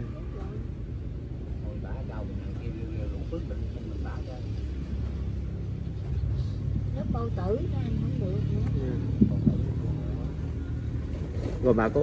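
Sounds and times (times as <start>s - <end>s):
engine low rumble: 0.0s - 12.0s.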